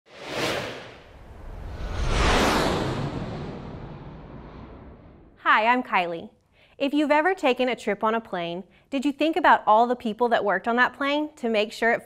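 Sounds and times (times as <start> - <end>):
whoosh sound effects: 0.1 - 5.4.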